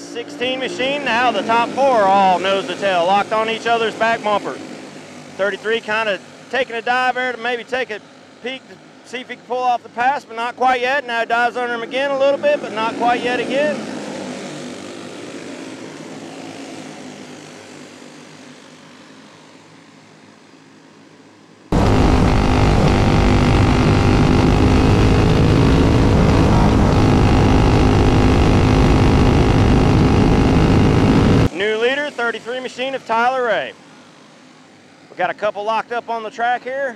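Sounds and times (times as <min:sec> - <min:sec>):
kart engine at racing speed: 0:00.0 - 0:07.3, 0:11.6 - 0:32.4
kart engines passing: 0:11.7 - 0:20.4, 0:21.7 - 0:32.4.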